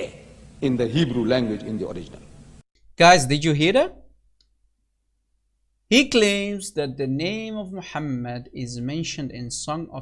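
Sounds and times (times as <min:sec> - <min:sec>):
man speaking: 0:00.0 - 0:02.3.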